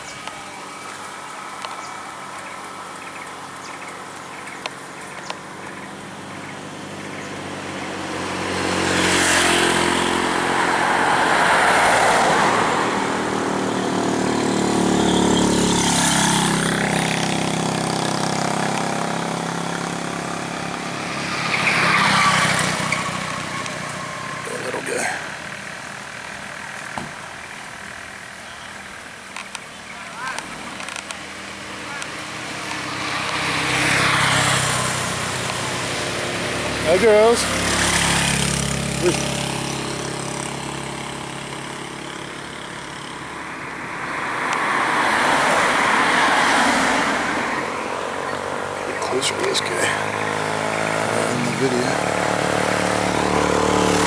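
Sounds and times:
vehicle engine and road noise: 0.0s - 54.0s
vehicles passing by: 0.0s - 54.0s.

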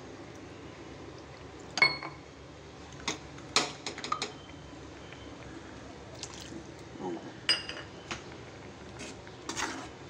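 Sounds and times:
thick sauce bubbles popping: 4.4s - 7.0s.

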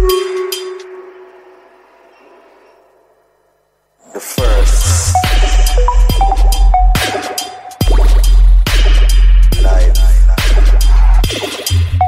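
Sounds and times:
electronic music: 0.0s - 2.1s, 4.1s - 12.0s.

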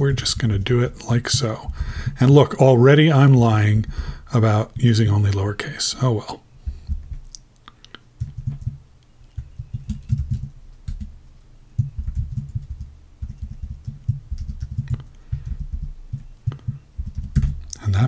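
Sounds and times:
typing on computer keyboard: 8.2s - 11.1s, 11.8s - 17.7s.

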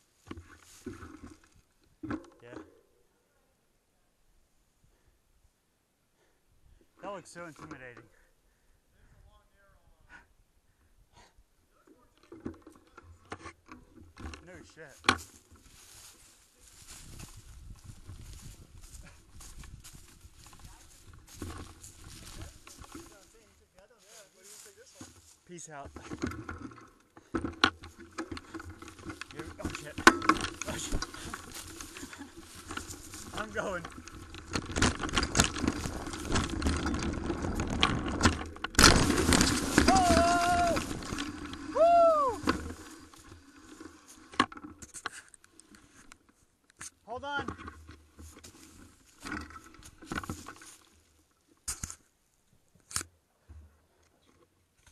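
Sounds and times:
bike rattling on dirt trail: 0.0s - 2.6s, 11.8s - 52.0s
loud bike jolt: 26.0s - 43.3s.

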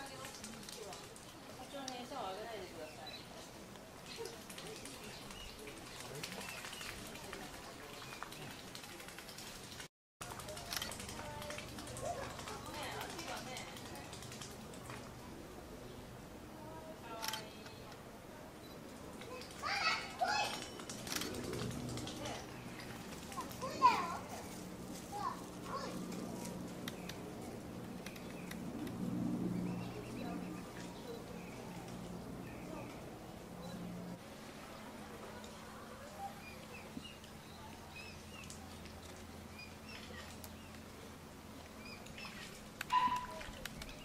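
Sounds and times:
faint background hum: 0.0s - 44.0s
faint outdoor background: 0.0s - 44.0s
children's high-pitched calls: 19.3s - 20.8s.

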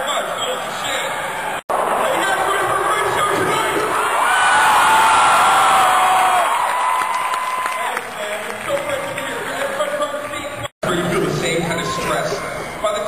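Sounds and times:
fans whooping: 0.2s - 10.4s
crowd cheering and applauding: 1.0s - 10.4s.

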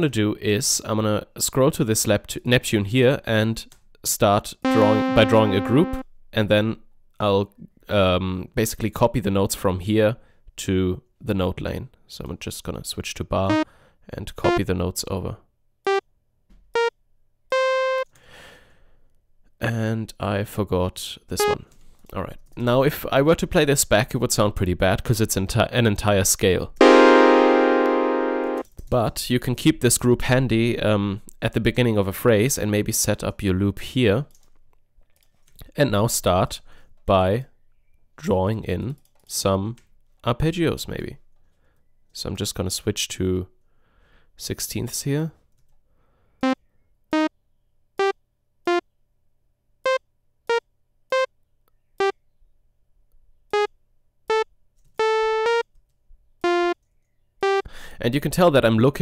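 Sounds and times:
synthesizer cluster chord: 4.7s - 6.0s, 26.8s - 28.6s, 55.0s - 55.6s, 56.4s - 56.8s, 57.4s - 57.7s.

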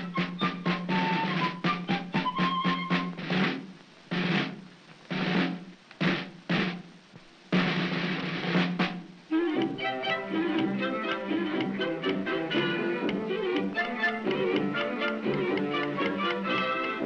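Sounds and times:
band tune of quick notes: 0.0s - 6.8s
snare drum rolls: 0.0s - 9.8s, 10.6s - 17.0s.

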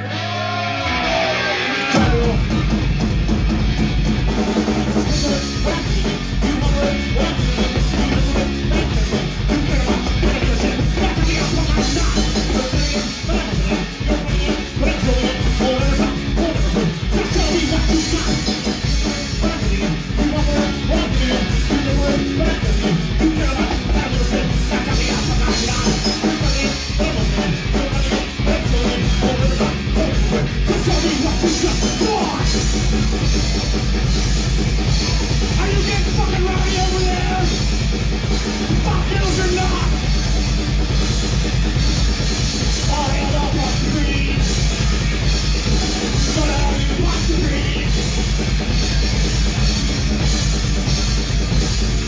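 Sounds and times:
bass guitar: 0.0s - 52.0s
distorted electric guitar: 0.0s - 52.0s
drum kit beat: 1.7s - 52.0s.

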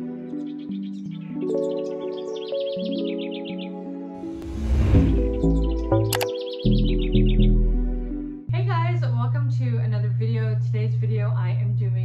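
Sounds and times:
chirping trills: 0.3s - 4.4s, 5.0s - 8.2s
synth jingle music: 1.5s - 8.5s
whoosh: 4.2s - 5.7s
bass line: 4.2s - 8.4s.

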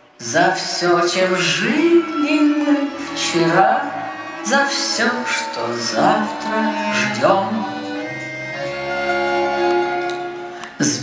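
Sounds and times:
backing instruments: 0.8s - 10.7s
accordion-like held chords: 2.8s - 10.6s.

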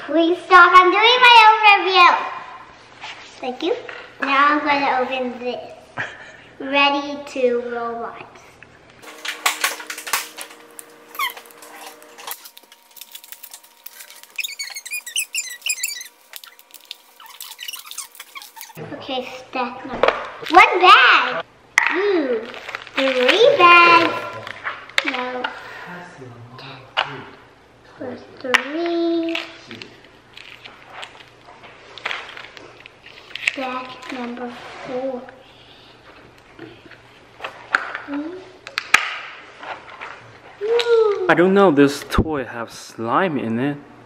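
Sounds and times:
paper tearing and crinkling: 9.0s - 18.8s, 22.4s - 24.6s
high squeaks: 11.1s - 18.8s.

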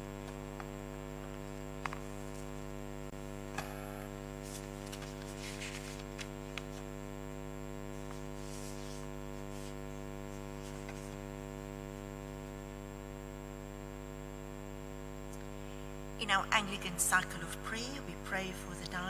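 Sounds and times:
electrical mains hum: 0.0s - 19.0s.

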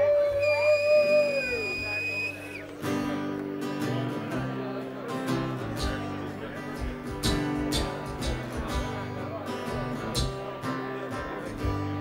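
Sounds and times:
audience whooping: 0.0s - 2.7s
high held whistle: 0.0s - 2.7s
band playing acoustic guitar and bass: 0.0s - 12.0s.

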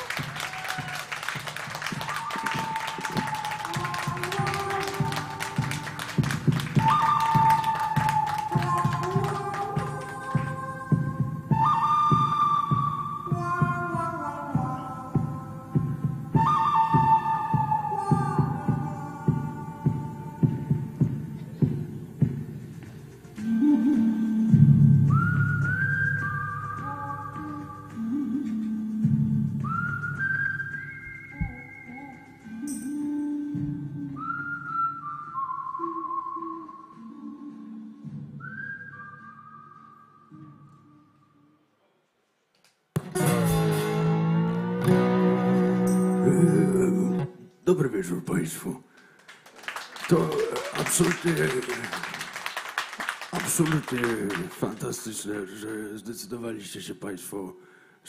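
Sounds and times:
man whistling a slow tune: 0.0s - 9.6s, 10.3s - 20.8s, 23.5s - 41.5s.

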